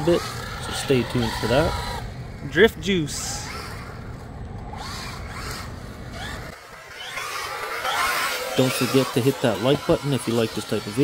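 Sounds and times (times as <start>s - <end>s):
electric motor whining: 0.0s - 11.0s.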